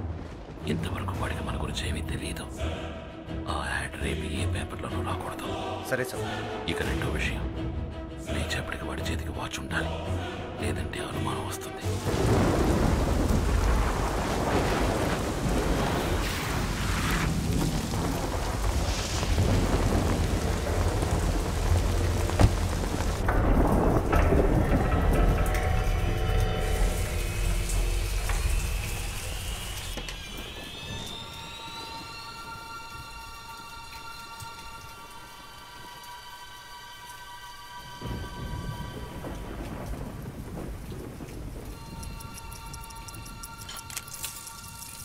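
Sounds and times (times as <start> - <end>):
deep rumbling thunder: 0.0 - 2.4, 11.9 - 32.8, 38.0 - 43.4
heavy rain: 0.0 - 5.4, 6.1 - 45.0.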